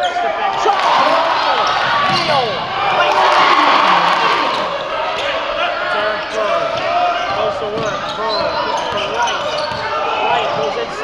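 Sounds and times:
voices in a gym: 0:00.0 - 0:11.0.

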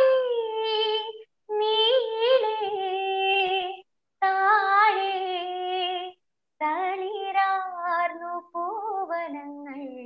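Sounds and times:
woman singing unaccompanied: 0:00.0 - 0:10.0.

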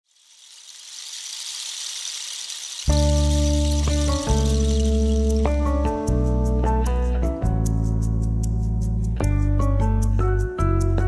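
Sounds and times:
high airy hiss: 0:00.1 - 0:05.6.

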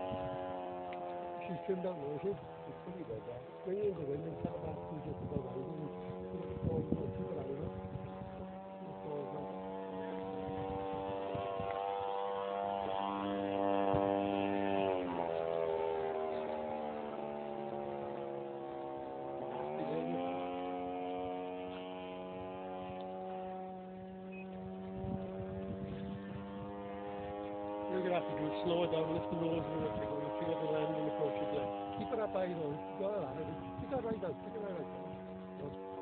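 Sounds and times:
model plane petrol engine: 0:00.0 - 0:36.0.

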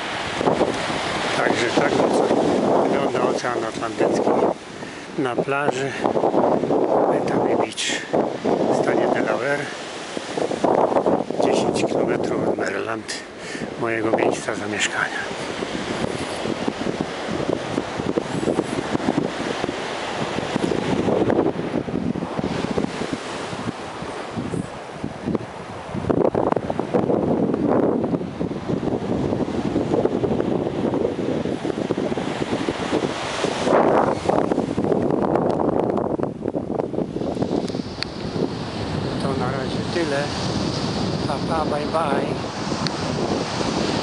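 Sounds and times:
surf breaking: 0:00.0 - 0:36.0
wind gusting over microphone: 0:00.0 - 0:44.0.

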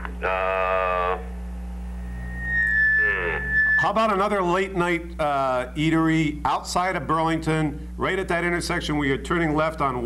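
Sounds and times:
low electrical hum: 0:00.0 - 0:10.0
high-pitched electronic tone: 0:02.0 - 0:04.2.

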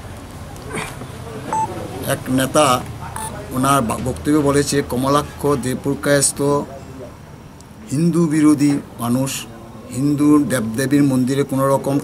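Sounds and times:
short electronic beep: 0:01.5 - 0:01.7.

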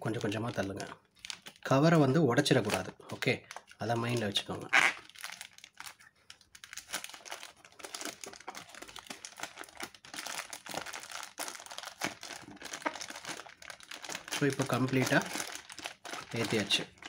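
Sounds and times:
plastic bag crinkling: 0:00.0 - 0:17.0.

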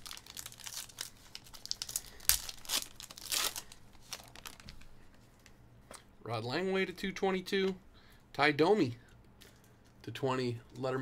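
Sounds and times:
foil card pack tearing and crinkling: 0:00.0 - 0:04.7.

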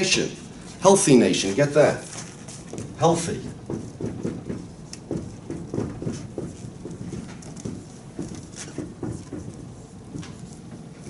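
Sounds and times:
marker squeaking on whiteboard: 0:02.4 - 0:10.6.

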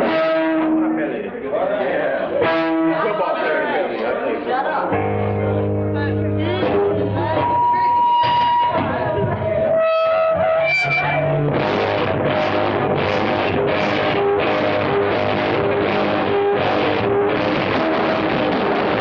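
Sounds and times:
punk rock band playing: 0:00.0 - 0:01.0, 0:02.4 - 0:03.2, 0:04.9 - 0:19.0
distorted electric guitar notes: 0:00.0 - 0:01.1, 0:02.3 - 0:03.2, 0:04.9 - 0:19.0.

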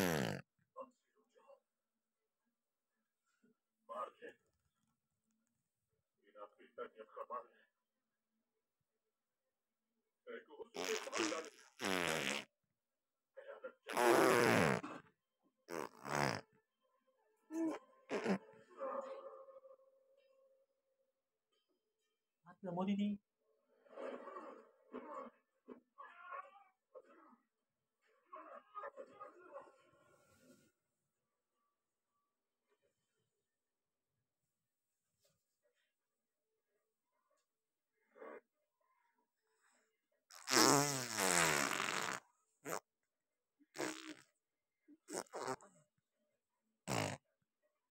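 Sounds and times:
baby blowing a raspberry: 0:00.0 - 0:00.4, 0:17.6 - 0:18.4, 0:46.9 - 0:47.2.

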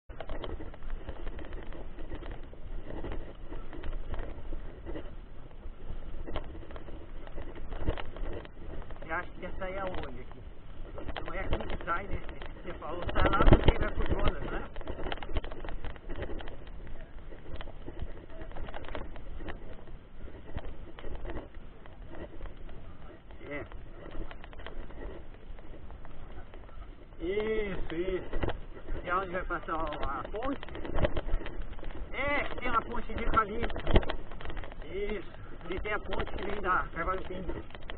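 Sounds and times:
wind: 0:00.0 - 0:37.9
bike rattling clicks and knocks: 0:00.1 - 0:37.9
bike tyres rumbling on dirt: 0:00.1 - 0:37.9.

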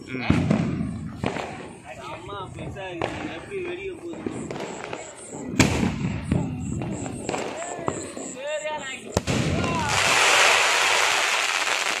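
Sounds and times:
firework crackling hiss: 0:00.4 - 0:12.0.

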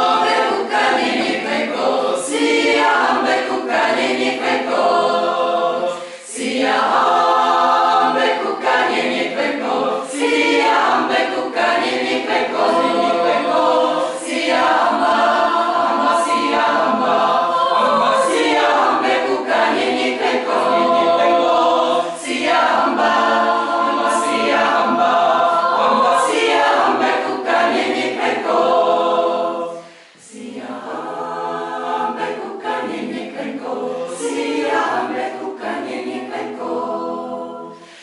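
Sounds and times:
mixed choir singing a cappella: 0:00.0 - 0:38.0.

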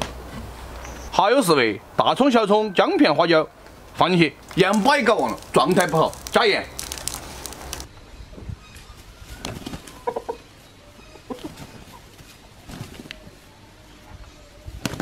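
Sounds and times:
birds scuffling with flapping wings: 0:04.4 - 0:07.9, 0:08.9 - 0:10.2, 0:11.3 - 0:13.5, 0:14.8 - 0:15.0
chickens clucking: 0:08.8 - 0:15.0.

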